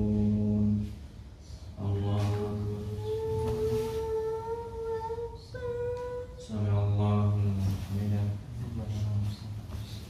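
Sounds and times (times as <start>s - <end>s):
person chanting prayer: 1.8s - 9.6s.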